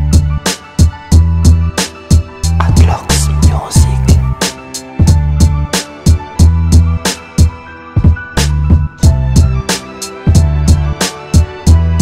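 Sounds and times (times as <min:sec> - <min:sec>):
hip hop instrumental beat: 0:01.9 - 0:07.4.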